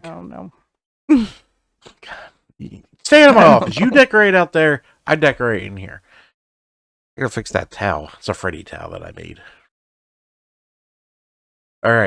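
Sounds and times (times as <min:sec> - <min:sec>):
person sighing: 0:01.1 - 0:01.5
faint breaths: 0:06.0 - 0:06.4.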